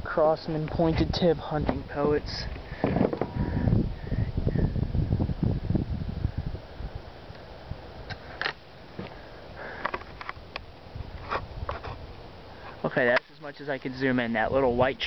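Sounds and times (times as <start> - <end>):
low rumbling microphone buffets: 0.0 - 15.0.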